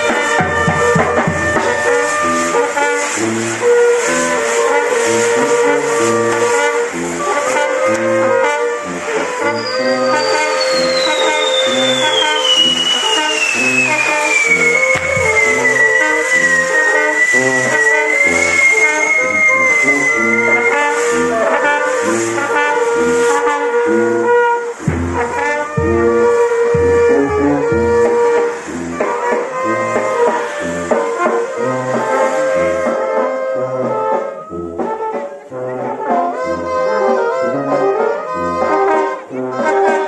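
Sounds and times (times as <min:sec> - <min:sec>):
whistle gliding down in pitch: 0:00.0 - 0:23.8, 0:24.6 - 0:35.4
brass band music: 0:00.0 - 0:40.0.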